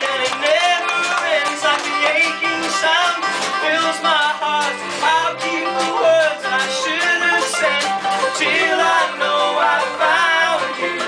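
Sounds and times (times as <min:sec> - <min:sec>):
double bass: 0:00.0 - 0:11.0
plucked banjo: 0:00.0 - 0:11.0
several voices singing together: 0:05.1 - 0:11.0.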